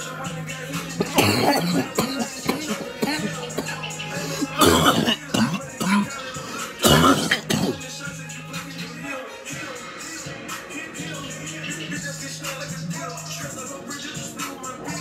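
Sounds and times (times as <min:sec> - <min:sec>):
hip hop music: 0:00.0 - 0:15.0
man coughing: 0:01.0 - 0:07.9.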